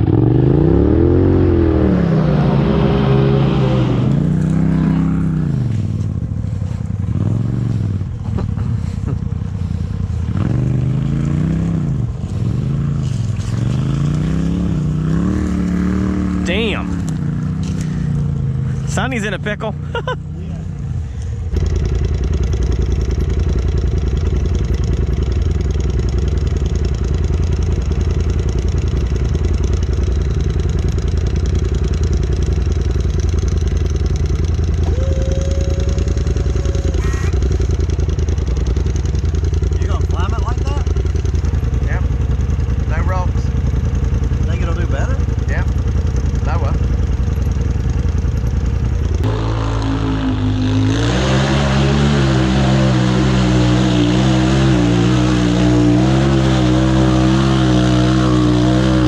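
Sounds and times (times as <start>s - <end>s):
engine revving up and down: 0.0s - 5.9s, 7.1s - 9.0s, 9.6s - 19.7s, 49.0s - 59.0s
off-road engine running under load: 0.0s - 59.0s.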